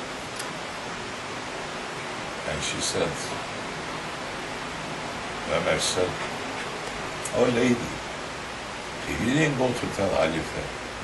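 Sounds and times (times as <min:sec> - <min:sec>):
recording hiss: 0:00.0 - 0:11.0
man speaking: 0:02.4 - 0:03.4, 0:05.5 - 0:06.3, 0:07.3 - 0:08.0, 0:09.0 - 0:10.8.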